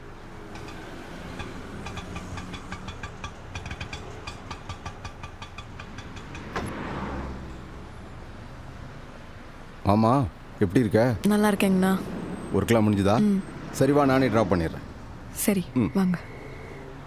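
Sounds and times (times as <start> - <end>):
rattling tick: 0.5 - 6.6.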